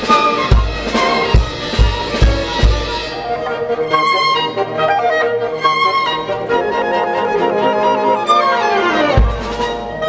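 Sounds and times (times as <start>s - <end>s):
string orchestra playing: 0.0s - 10.0s
low drum hits: 0.5s - 3.3s.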